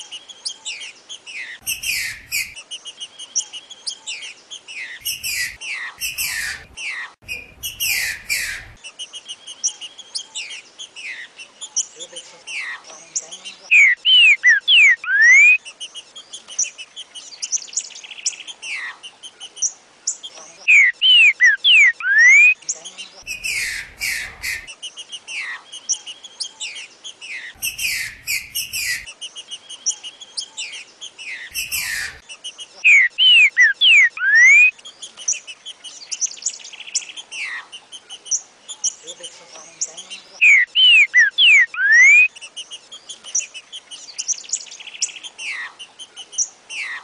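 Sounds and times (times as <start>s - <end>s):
high bird chatter: 0.0s - 47.0s
bird whistled song: 0.4s - 11.9s, 13.7s - 15.6s, 19.6s - 37.5s, 40.4s - 42.3s.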